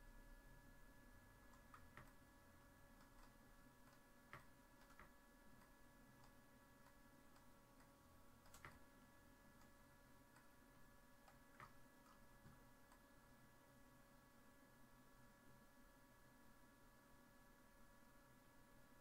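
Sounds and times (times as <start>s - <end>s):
faint steady whine: 0.0s - 19.0s
computer mouse clicks: 1.5s - 2.2s, 3.0s - 8.9s, 11.2s - 13.0s.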